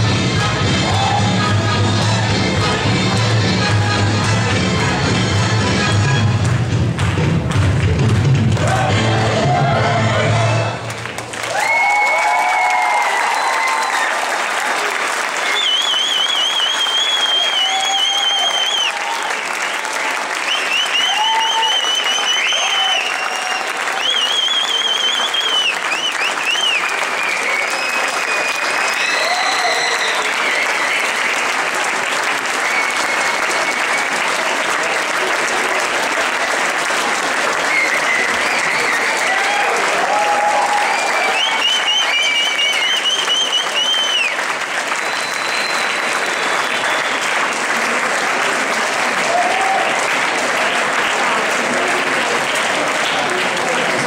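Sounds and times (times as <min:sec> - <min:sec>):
audience applauding: 0:00.0 - 0:54.0.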